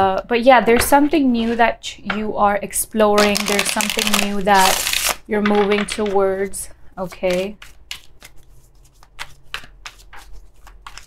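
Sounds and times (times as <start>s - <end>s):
cards being shuffled: 3.2s - 11.0s.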